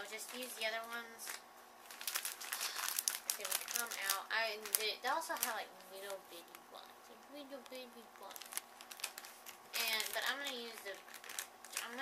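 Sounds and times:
plastic bag crinkling: 0.0 - 6.7, 7.6 - 12.0.

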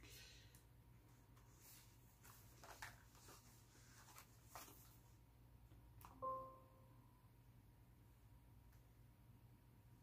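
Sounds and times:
low steady hum: 0.0 - 10.0
short ringing tone: 6.2 - 7.0.

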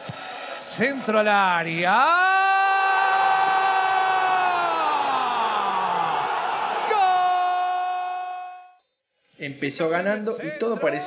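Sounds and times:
stadium crowd cheering: 0.0 - 8.8.

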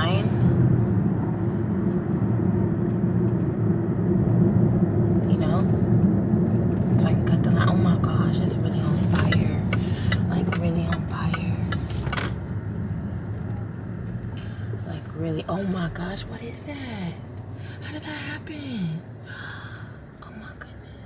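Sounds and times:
car rumbling in traffic: 0.0 - 21.0.

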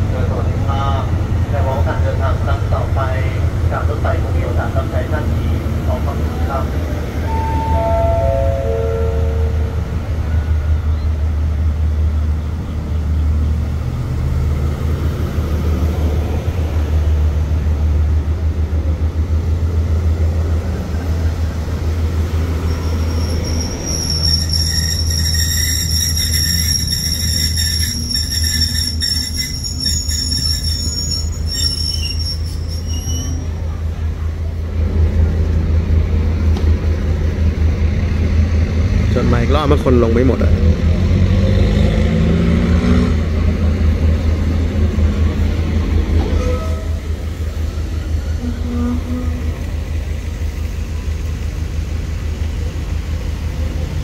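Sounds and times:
diesel train rumble: 0.0 - 54.0
descending four-note chime: 7.3 - 9.8
train wheels squealing: 22.4 - 33.6, 46.2 - 47.2.

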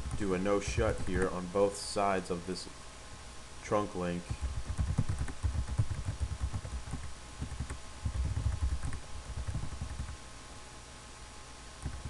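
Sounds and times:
computer keyboard typing: 0.0 - 1.3, 4.3 - 10.2, 11.8 - 12.0.

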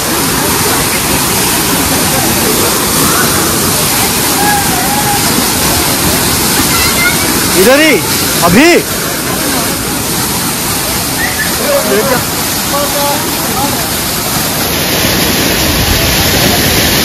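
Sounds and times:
waterfall pouring onto rock: 0.0 - 17.0.

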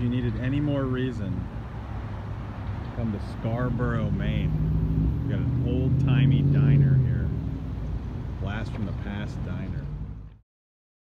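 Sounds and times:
car engine humming: 0.0 - 10.4.

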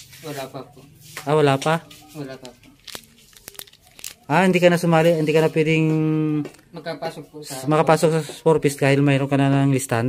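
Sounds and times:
plastic sleeve crinkling and clicking: 2.4 - 4.6.

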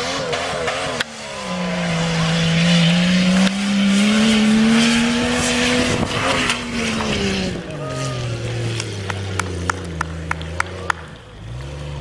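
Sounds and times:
truck engine revving: 0.0 - 12.0.

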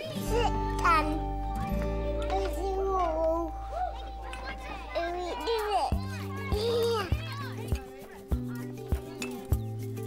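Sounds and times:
children chattering: 0.0 - 10.0
music with bass and steady beat: 0.5 - 10.0.

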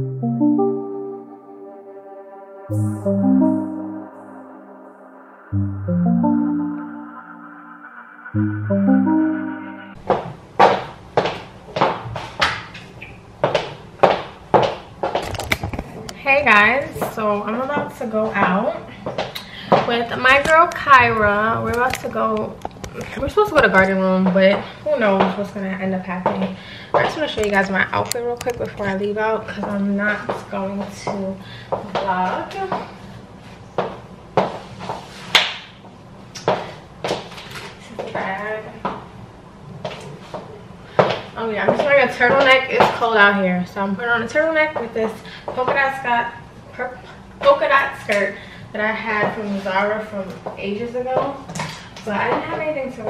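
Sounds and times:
footsteps on hardwood floor: 10.0 - 12.4, 13.4 - 15.2.

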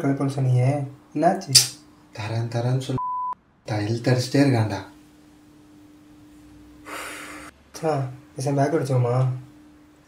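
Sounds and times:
low steady hum: 0.3 - 10.0
man breathing: 6.8 - 7.5.

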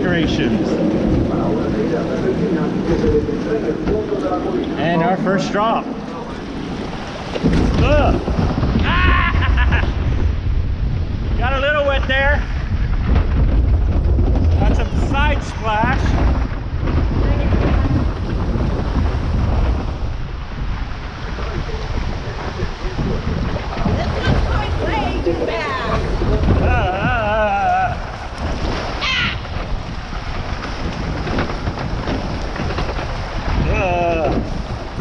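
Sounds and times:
voices: 0.0 - 9.5, 21.3 - 28.2
rushing splashing water: 0.0 - 35.0
wind buffeting microphone: 0.0 - 35.0.

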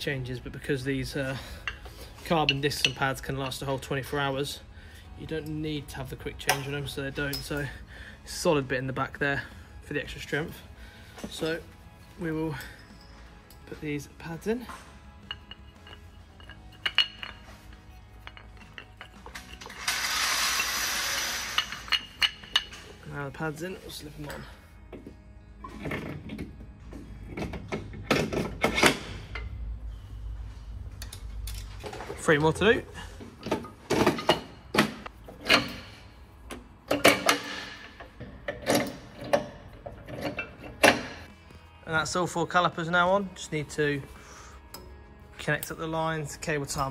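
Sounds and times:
metallic clinks and knocks: 14.7 - 20.0, 21.5 - 23.0.

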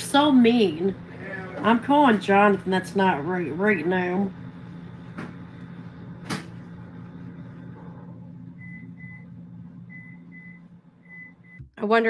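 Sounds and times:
low hum: 0.0 - 11.7.

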